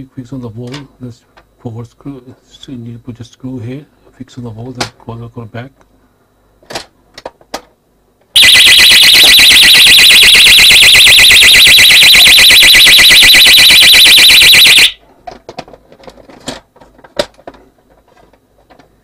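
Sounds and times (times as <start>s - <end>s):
alarm bell siren warbling: 8.4s - 15.0s.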